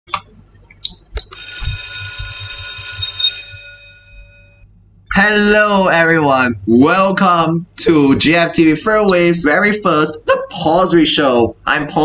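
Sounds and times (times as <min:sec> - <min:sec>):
bell-like high ringing tones: 0:01.3 - 0:04.7.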